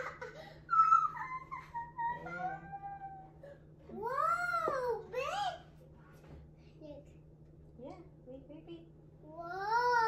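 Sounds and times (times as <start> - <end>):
child laughing: 0.0 - 3.3.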